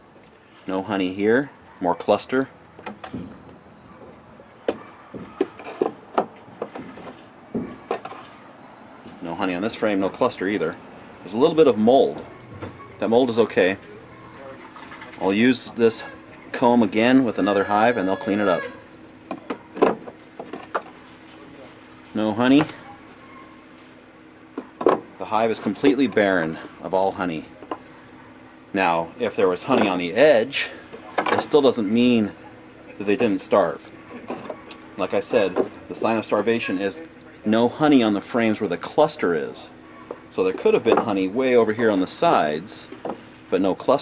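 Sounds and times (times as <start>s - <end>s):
wooden hive frames clacking: 2.8s - 8.4s, 19.3s - 21.0s, 29.3s - 30.2s, 30.9s - 31.9s, 33.0s - 36.8s, 39.9s - 43.3s
hive tool knocking on wooden frames: 24.6s - 25.1s, 40.0s - 41.2s, 42.3s - 43.2s.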